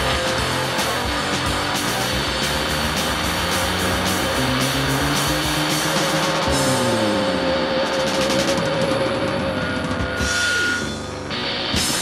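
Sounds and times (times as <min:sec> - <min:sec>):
distorted electric guitar: 0:00.0 - 0:12.0
punk rock band playing: 0:00.0 - 0:12.0.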